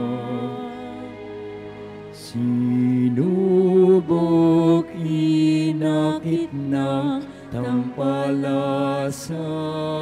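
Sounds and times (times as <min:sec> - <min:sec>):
slow hymn singing: 0:00.0 - 0:10.0.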